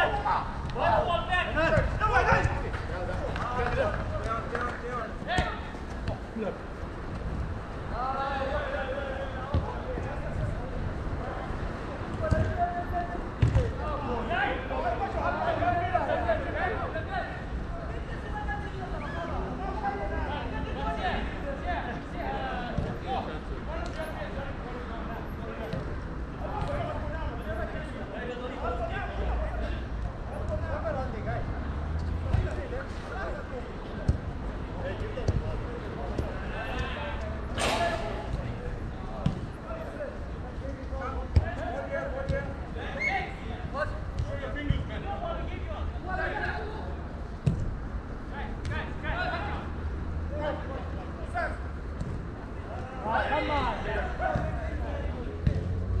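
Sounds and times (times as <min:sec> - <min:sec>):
players shouting: 0:00.0 - 0:06.5
football being kicked: 0:13.4 - 0:13.7.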